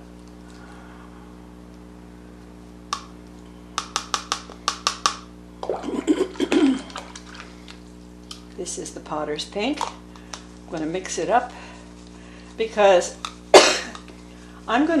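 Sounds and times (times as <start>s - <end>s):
steady low hum: 0.0s - 15.0s
person coughing: 5.8s - 7.0s, 13.6s - 14.0s.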